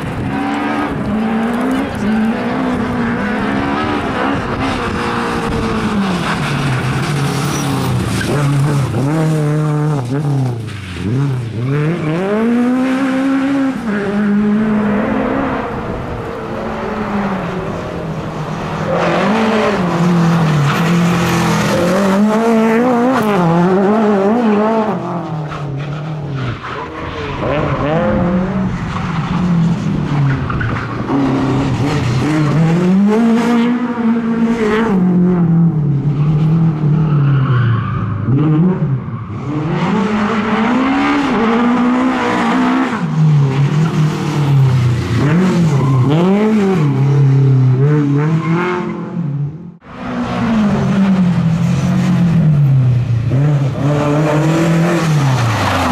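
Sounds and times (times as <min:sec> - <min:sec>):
rally car engine revving hard: 0:00.0 - 0:17.8, 0:18.6 - 0:26.3, 0:27.3 - 0:37.1, 0:38.2 - 0:55.9.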